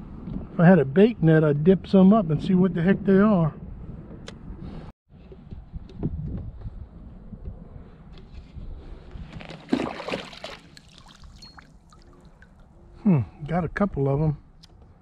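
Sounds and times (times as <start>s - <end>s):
water sloshing and trickling: 9.3s - 12.8s
water splash: 9.5s - 12.6s.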